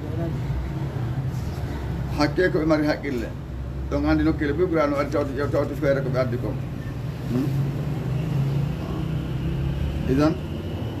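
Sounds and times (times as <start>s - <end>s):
man speaking: 9.9s - 10.6s.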